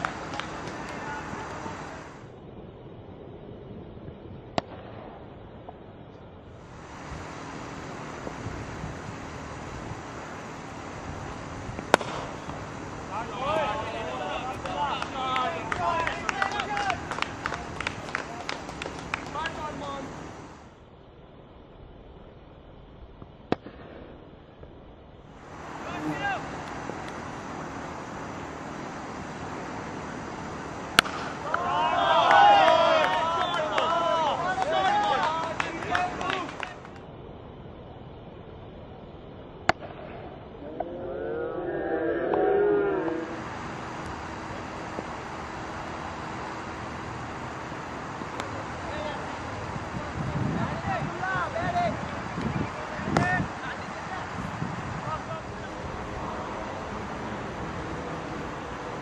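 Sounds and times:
faint hum: 0.0 - 59.0
faint outdoor background: 0.0 - 59.0
cricket bat striking ball: 11.8 - 12.6, 30.9 - 31.7
men shouting long calls: 13.0 - 18.6, 25.7 - 27.0, 31.4 - 36.7, 40.7 - 43.6.

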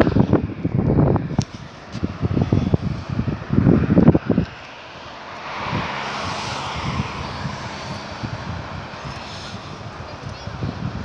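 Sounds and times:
car passing: 0.0 - 11.0
wind buffeting microphone: 0.0 - 11.0.

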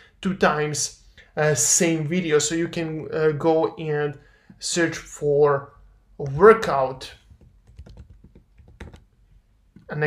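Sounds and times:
keyboard key clicks: 7.3 - 9.1.

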